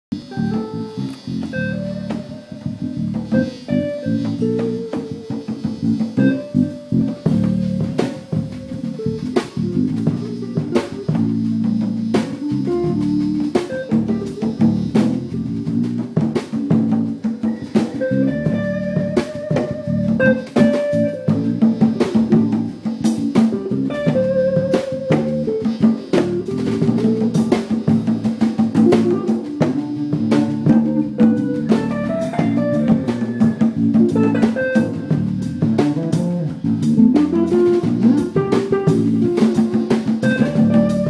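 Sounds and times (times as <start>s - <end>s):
bass guitar: 0.0s - 41.0s
drum kit beat: 0.1s - 41.0s
electric guitar notes: 0.1s - 41.0s.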